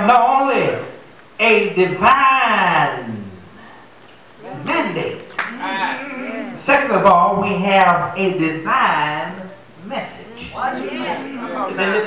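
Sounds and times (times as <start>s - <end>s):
man half-sung preaching: 0.0s - 3.3s, 4.4s - 5.3s, 6.5s - 12.0s.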